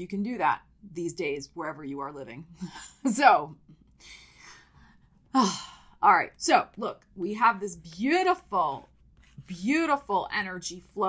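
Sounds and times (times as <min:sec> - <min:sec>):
woman sighing: 0:03.9 - 0:06.0.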